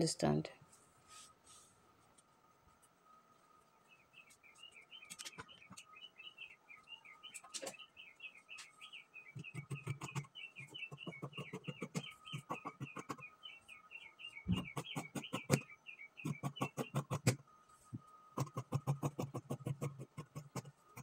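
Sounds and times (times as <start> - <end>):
rapid bird chirping: 3.8 - 17.5, 18.4 - 21.0.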